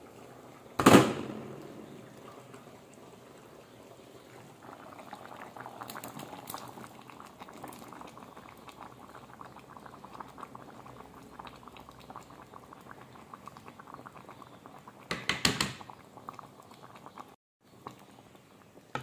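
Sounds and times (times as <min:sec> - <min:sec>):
pot bubbling and simmering: 0:00.0 - 0:19.0.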